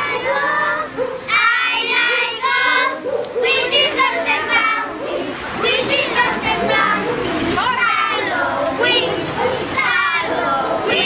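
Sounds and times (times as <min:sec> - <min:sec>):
children shouting and chattering: 0:00.0 - 0:11.0.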